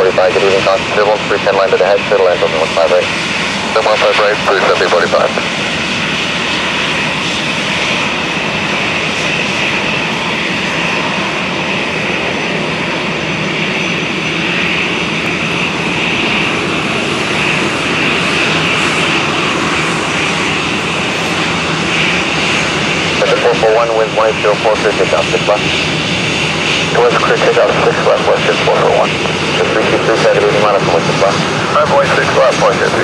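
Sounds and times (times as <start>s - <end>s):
jet engines at high power: 0.0s - 33.0s.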